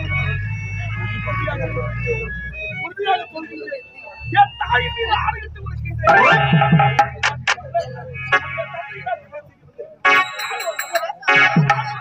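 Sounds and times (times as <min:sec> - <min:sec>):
organ-like keyboard notes: 0:00.0 - 0:08.7, 0:10.0 - 0:12.0
actors' dialogue over loudspeaker: 0:00.0 - 0:12.0.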